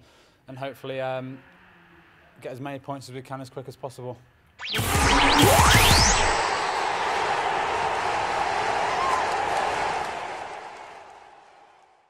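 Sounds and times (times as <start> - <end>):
rising whoosh: 4.6 - 8.7.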